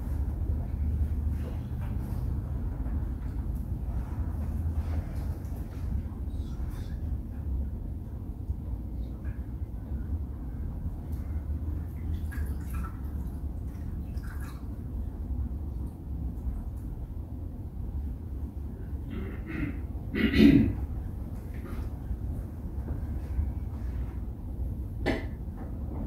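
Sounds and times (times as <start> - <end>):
steady low hum: 0.0 - 26.0.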